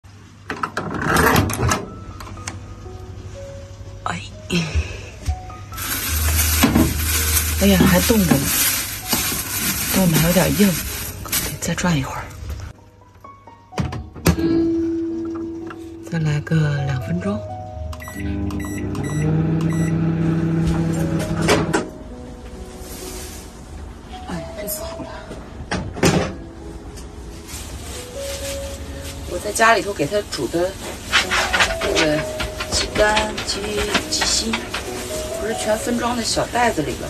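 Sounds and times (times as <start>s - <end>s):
soft background music: 0.1s - 37.0s
microwave humming: 17.8s - 22.0s
short high beeps: 18.0s - 20.0s.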